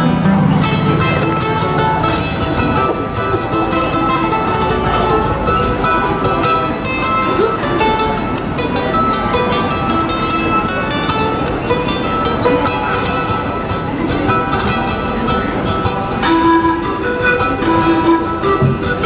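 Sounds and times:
plucked string instrument: 0.0s - 19.0s.

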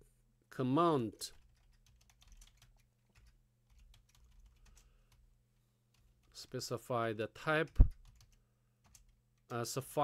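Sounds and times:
keyboard typing: 1.3s - 5.2s, 7.7s - 9.6s.

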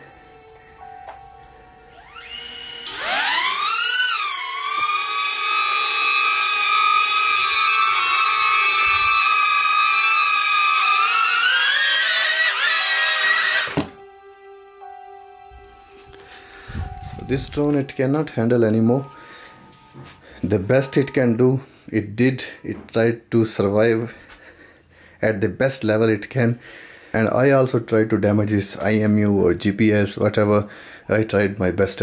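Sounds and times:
drone propellers whining: 1.9s - 14.0s.

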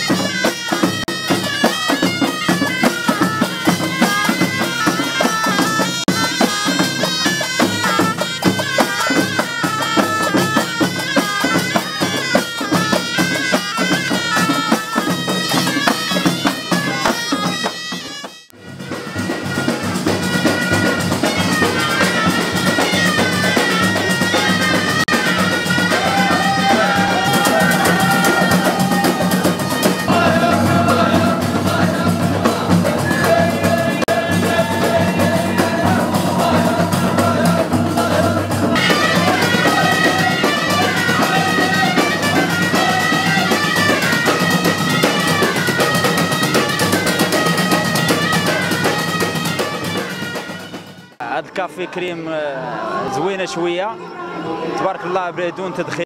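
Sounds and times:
frame drums beating: 0.0s - 51.2s
shrill reed pipe melody: 0.0s - 51.2s
men singing: 23.5s - 44.5s.

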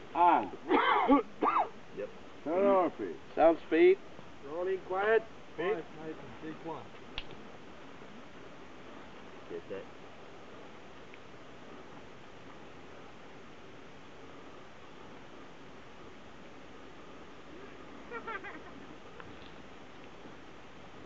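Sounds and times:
outdoor ambience hiss: 0.0s - 21.0s.

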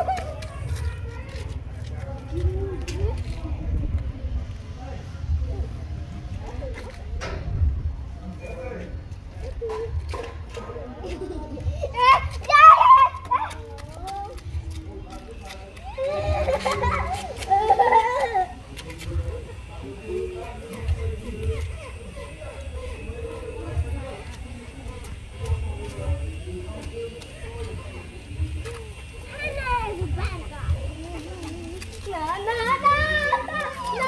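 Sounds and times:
child talking: 0.0s - 1.6s, 11.7s - 14.5s, 29.3s - 34.0s
young children calling out: 11.9s - 13.5s, 32.2s - 34.0s.

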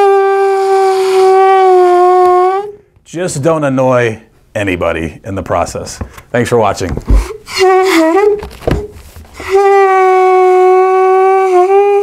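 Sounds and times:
balloon bagpipe reed-like note: 0.0s - 2.9s, 7.5s - 8.4s, 9.4s - 12.0s.

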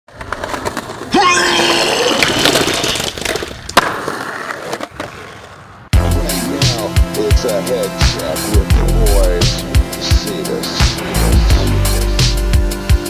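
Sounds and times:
skateboard cracking: 0.1s - 1.2s, 1.8s - 5.9s
skateboard wheels rumbling: 0.1s - 1.2s, 1.8s - 5.9s.

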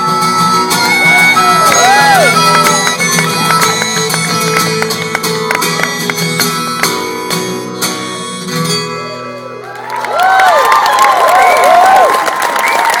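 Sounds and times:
audience applause and cheering: 0.0s - 6.2s, 9.3s - 13.0s.

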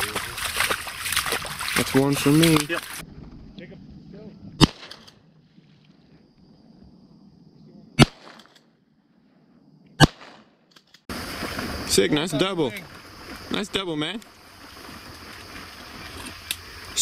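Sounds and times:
shotgun shots with echo: 4.6s - 5.2s, 8.0s - 8.5s, 10.0s - 10.6s.

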